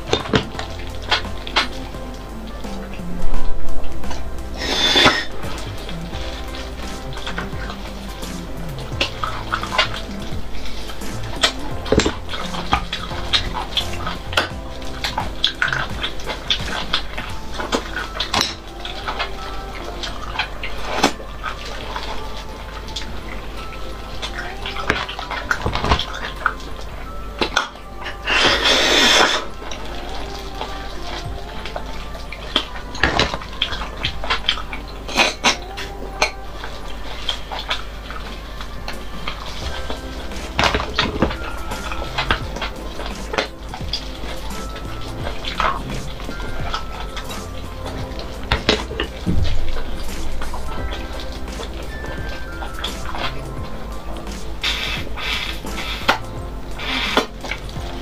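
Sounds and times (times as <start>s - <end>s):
background music: 0.0s - 58.0s
slurping marrow from bones: 27.4s - 35.6s.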